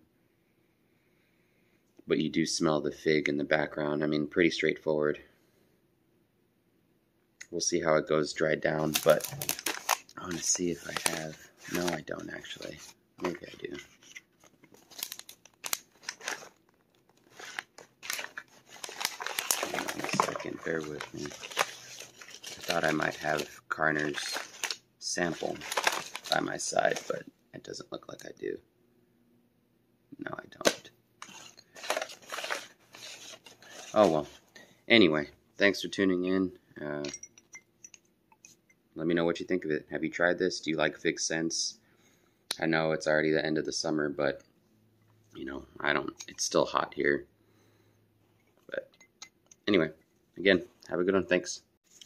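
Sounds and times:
rustling and crinkling: 8.8 - 27.2, 30.6 - 34.6
glass perfume bottle clinks: 37.1 - 38.0.

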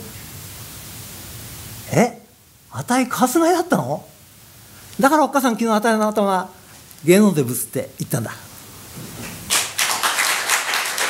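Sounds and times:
audience applauding: 9.2 - 11.0.

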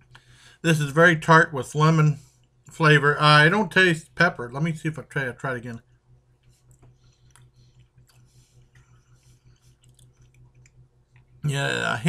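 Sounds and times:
steady low hum: 0.0 - 12.0
person chewing food: 6.4 - 11.4
wet mouth clicks: 6.7 - 11.3.

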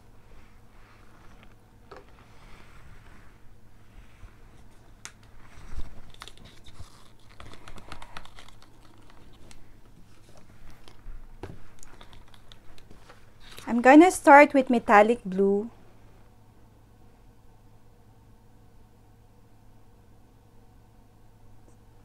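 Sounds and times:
woman speaking: 13.6 - 15.8.

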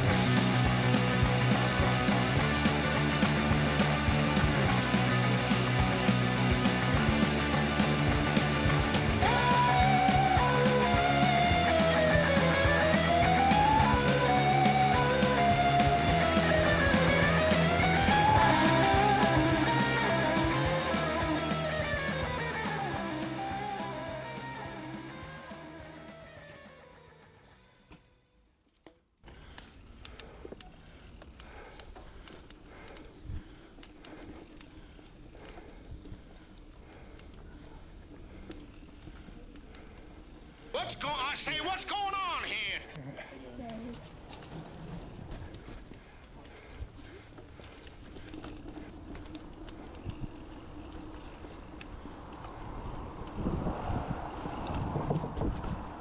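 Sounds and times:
bike clicks and rattles: 0.0 - 40.8, 43.5 - 56.0
bike tyres on dirt: 0.0 - 42.8, 43.4 - 56.0
bike tyres rumbling on dirt: 29.2 - 40.8, 43.9 - 56.0
wind buffeting microphone: 48.0 - 56.0.

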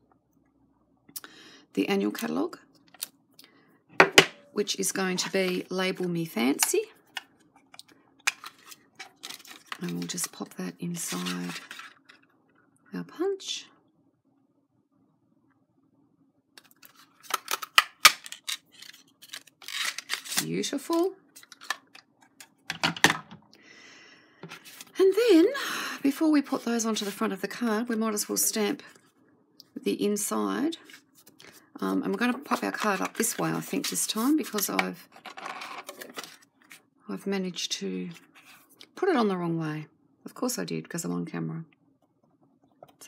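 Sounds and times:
paper rustling and sliding: 24.5 - 25.0.

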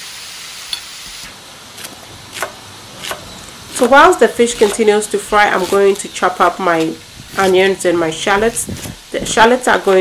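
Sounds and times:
fish sizzling in hot oil: 0.0 - 10.0
knife slicing on cutting board: 1.8 - 6.1.

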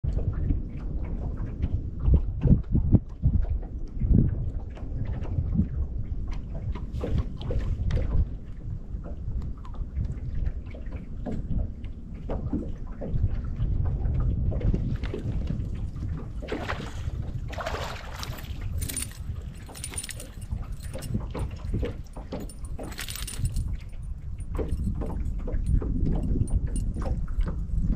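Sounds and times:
water lapping at hull: 0.0 - 27.9
wind on microphone: 0.0 - 27.9.

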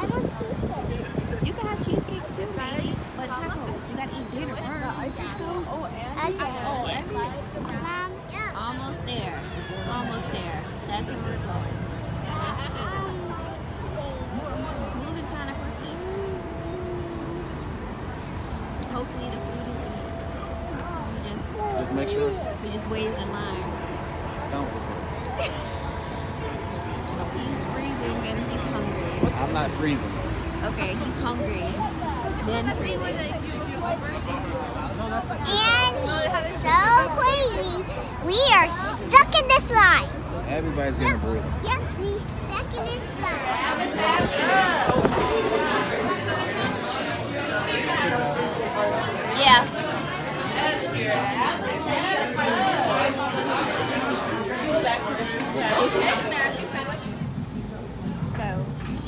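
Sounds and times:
chatter of many people: 0.0 - 59.0
indistinct voices talking: 0.0 - 59.0
low city rumble: 0.0 - 59.0.

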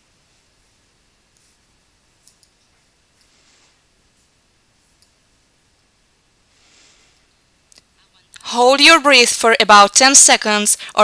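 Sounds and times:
short faint hiss: 1.3 - 5.2.

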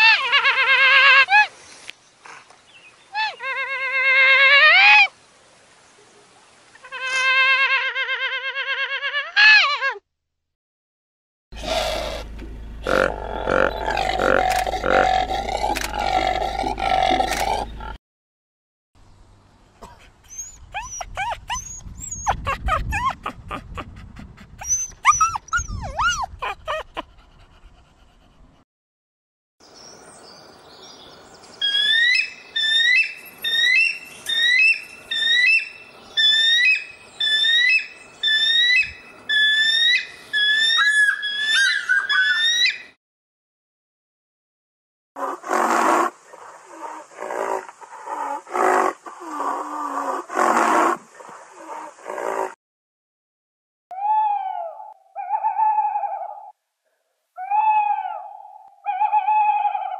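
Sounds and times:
low hum: 11.6 - 17.9.

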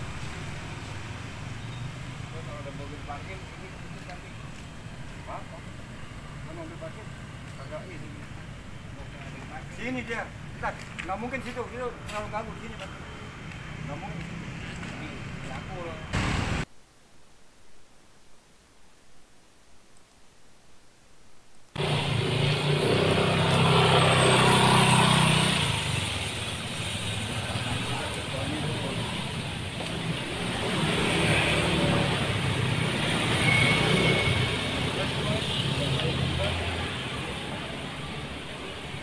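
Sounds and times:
vehicle engines and traffic: 0.0 - 16.7, 21.8 - 39.0.

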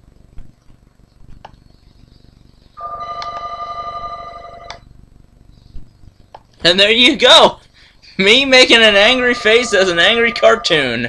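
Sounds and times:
steady electronic tone: 8.5 - 11.0.

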